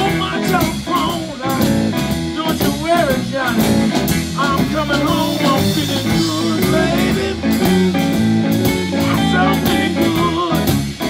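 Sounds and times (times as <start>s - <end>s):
lead guitar line bending: 0.0s - 11.0s
live blues band playing: 0.0s - 11.0s.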